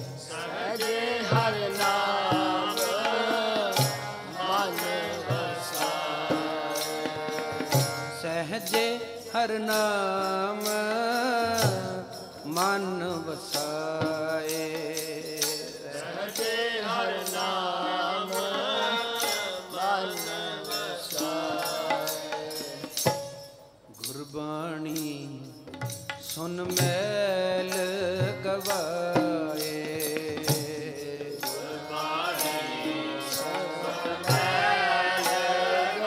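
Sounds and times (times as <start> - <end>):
harmonium: 0.0 - 36.0
person singing devotional verses: 0.0 - 36.0
tabla percussion strokes: 0.0 - 36.0.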